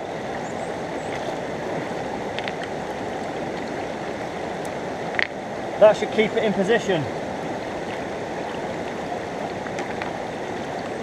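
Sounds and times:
river water over rocks: 0.0s - 11.0s.

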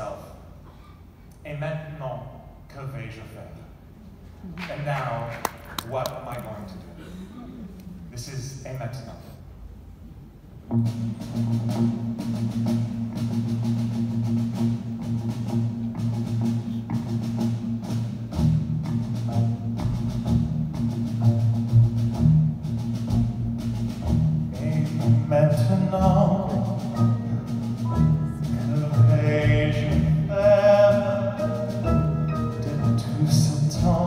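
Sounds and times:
piano: 10.7s - 34.0s
upright bass: 10.7s - 34.0s
percussion beat: 11.0s - 34.0s.

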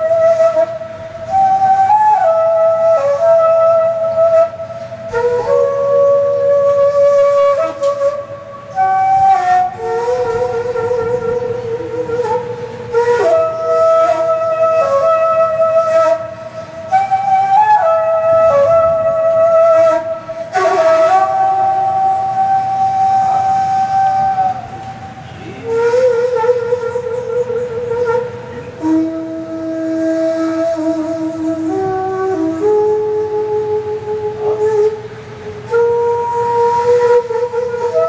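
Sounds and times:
bamboo flute long note: 0.0s - 38.0s.

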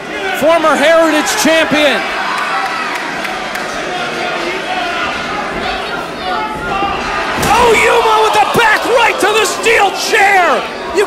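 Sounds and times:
loud shouting: 0.0s - 11.0s.

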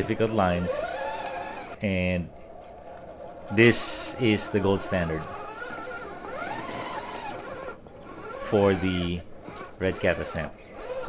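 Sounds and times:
electric motor and gear whine: 0.0s - 11.0s.

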